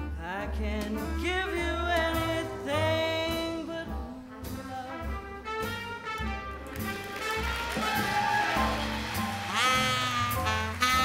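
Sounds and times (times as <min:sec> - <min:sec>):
big band swing jazz: 0:00.0 - 0:11.0
horn holding high note: 0:07.6 - 0:11.0.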